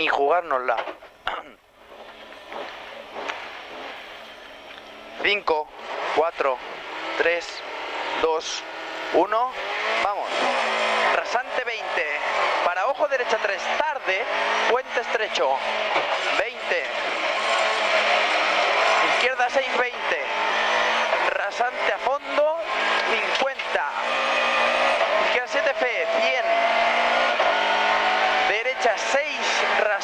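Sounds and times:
car engine idling: 1.0 - 21.4.

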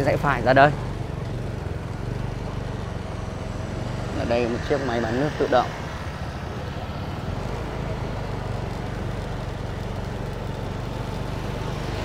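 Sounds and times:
road noise hiss: 0.0 - 12.0
small motorbike engine running: 0.0 - 12.0.

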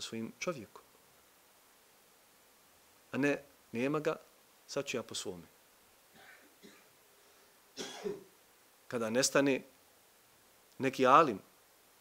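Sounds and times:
man clearing his throat: 7.8 - 8.3.

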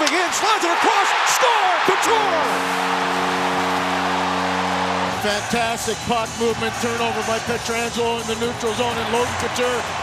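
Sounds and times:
crowd cheering: 0.0 - 10.0
arena goal horn: 2.0 - 7.9.

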